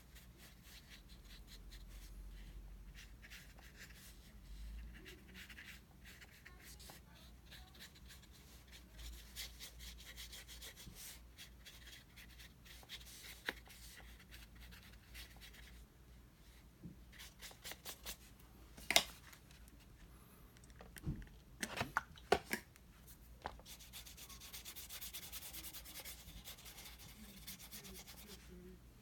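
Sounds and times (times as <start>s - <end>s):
brush swishing on paper: 23.0s - 28.6s.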